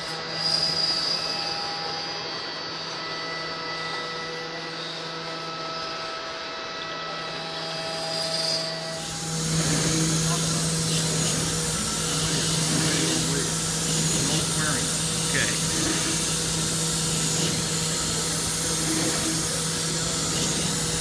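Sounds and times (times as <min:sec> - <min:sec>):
rough machine noise with low hum: 0:00.0 - 0:21.0
spindle whine: 0:00.0 - 0:21.0
cutting hiss: 0:07.6 - 0:21.0.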